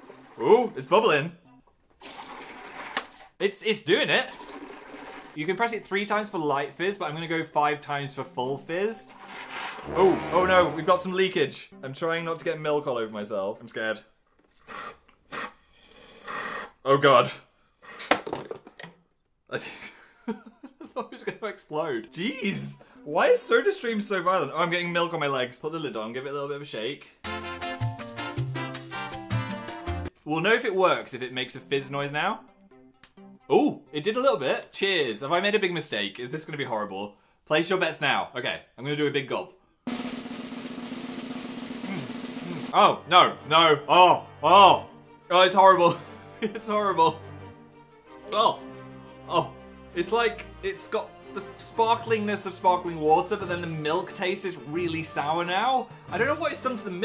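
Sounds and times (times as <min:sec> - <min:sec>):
snare drum roll: 0:09.3 - 0:11.2, 0:39.9 - 0:43.0.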